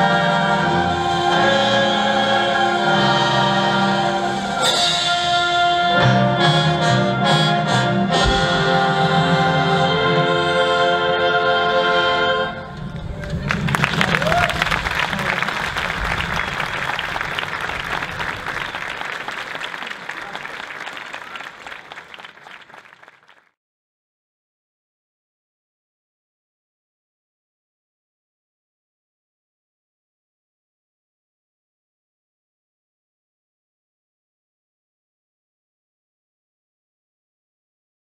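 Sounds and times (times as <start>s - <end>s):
wind band playing: 0.0s - 22.8s
audience applause: 12.8s - 23.5s.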